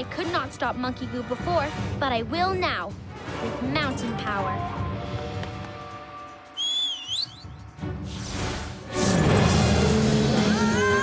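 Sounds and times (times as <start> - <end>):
cartoon whistle sound effect: 6.6 - 7.5.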